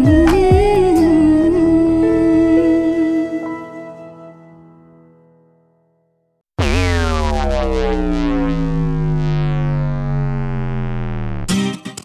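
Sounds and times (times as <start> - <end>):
gliding synthesizer tone: 6.6 - 11.5.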